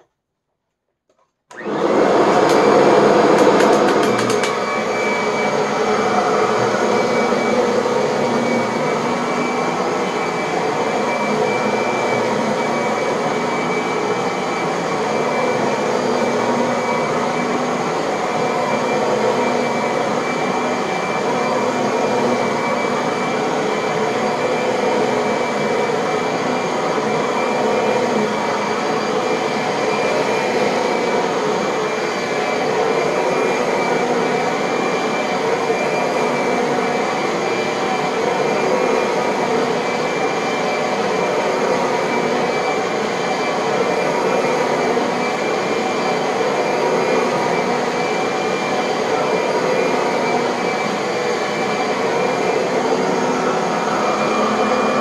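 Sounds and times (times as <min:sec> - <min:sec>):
vacuum cleaner running over carpet: 0:01.5 - 0:55.0
vacuum cleaner rattle: 0:01.6 - 0:05.2.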